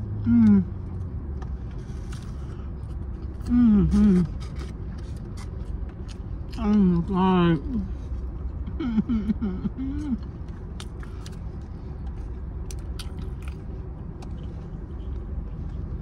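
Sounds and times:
appreciative mm hum: 0:00.0 - 0:01.1, 0:02.3 - 0:04.7, 0:08.6 - 0:11.4
low rumble inside car: 0:00.0 - 0:16.0
chewing: 0:10.1 - 0:15.9.

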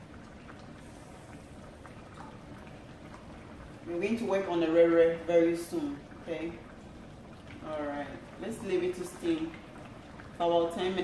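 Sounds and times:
pot simmering with bubbling hiss: 0:00.0 - 0:11.0.

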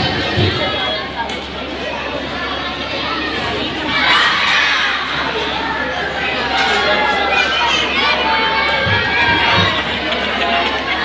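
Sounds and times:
children shouting and cheering: 0:00.0 - 0:11.0.

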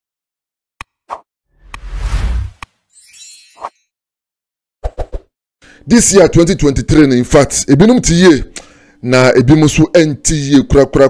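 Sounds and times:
whoosh: 0:01.6 - 0:02.6
shimmering high chime: 0:02.9 - 0:03.8.

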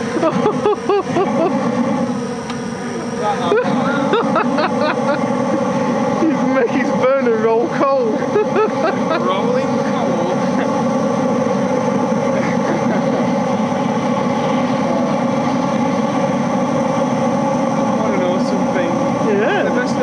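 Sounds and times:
oil burner rushing: 0:00.0 - 0:20.0
steady hum: 0:00.0 - 0:20.0.

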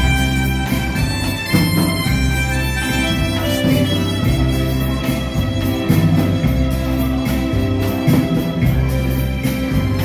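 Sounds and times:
bass: 0:00.0 - 0:10.0
drum kit: 0:00.0 - 0:10.0
electric guitar: 0:00.0 - 0:10.0.

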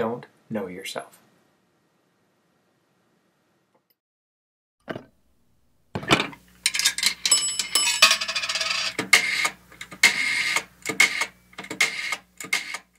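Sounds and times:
bell-like rings: 0:07.2 - 0:08.8.

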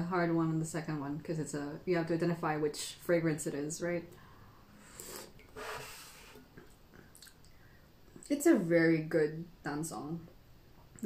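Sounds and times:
breathy hiss drawing air: 0:04.6 - 0:06.6
slurping sip of tea: 0:04.8 - 0:06.6.

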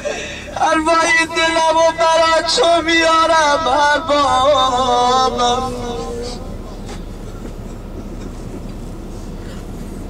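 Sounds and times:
coach engine and road noise: 0:00.0 - 0:10.0
man chanting: 0:00.5 - 0:06.5.

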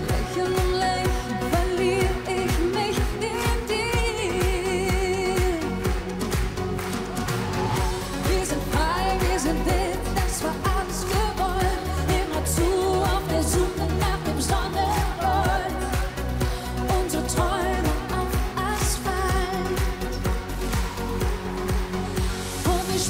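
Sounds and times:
woman singing into microphone: 0:00.0 - 0:06.2, 0:07.8 - 0:20.4, 0:22.6 - 0:23.0
pop backing track: 0:00.0 - 0:23.0.

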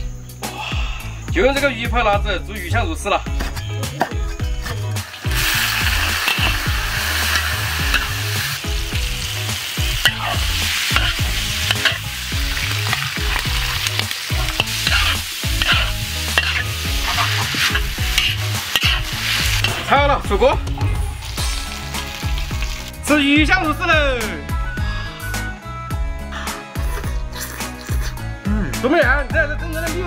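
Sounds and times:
metal spatula stir-frying: 0:04.4 - 0:20.4
oil sizzling in a wok: 0:04.4 - 0:23.1.

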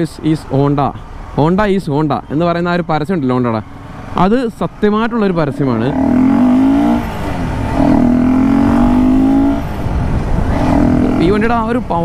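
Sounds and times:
motorcycle engine pulling away: 0:05.8 - 0:09.6
wind rushing over microphone: 0:05.9 - 0:12.0.

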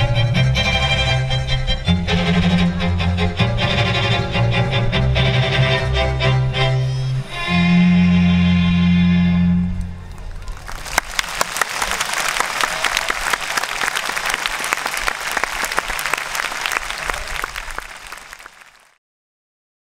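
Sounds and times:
audience applauding: 0:10.0 - 0:19.0.

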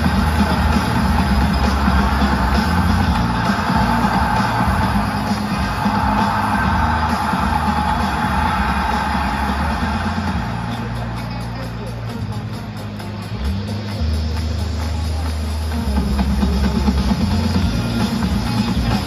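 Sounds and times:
crowd noise: 0:00.0 - 0:19.0
music over loudspeakers echoing: 0:00.0 - 0:19.0.

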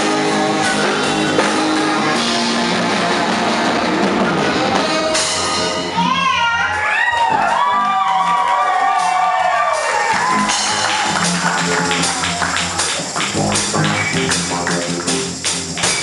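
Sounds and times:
bass: 0:00.0 - 0:16.0
drums and percussion groove: 0:00.0 - 0:16.0.

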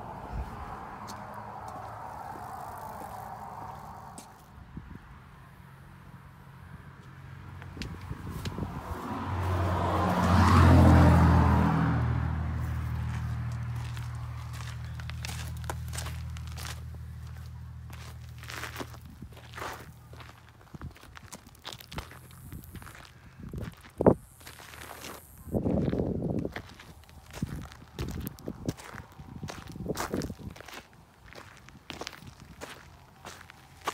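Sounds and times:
vehicle passing by: 0:00.0 - 0:33.9
footsteps crunching on gravel: 0:00.4 - 0:04.5, 0:07.6 - 0:10.4, 0:12.6 - 0:33.9.

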